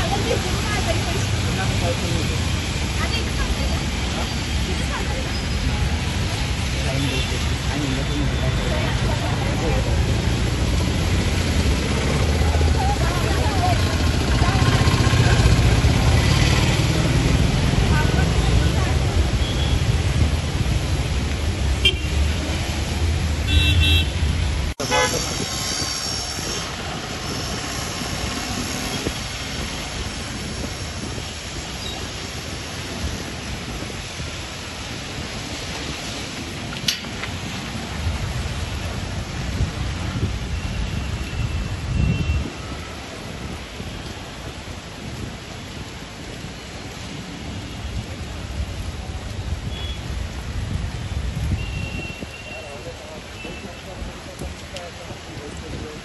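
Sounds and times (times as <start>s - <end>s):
heavy rain on wet street: 0.0s - 56.0s
traffic through water: 0.0s - 56.0s
car horn toots: 24.8s - 25.3s.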